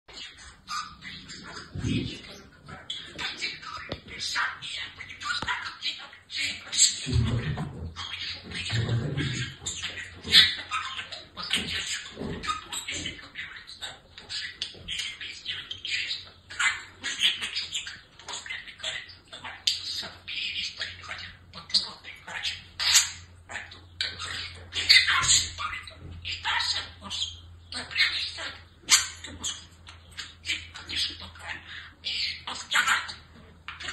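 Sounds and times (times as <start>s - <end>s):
budgerigars chattering: 0.1s - 33.9s.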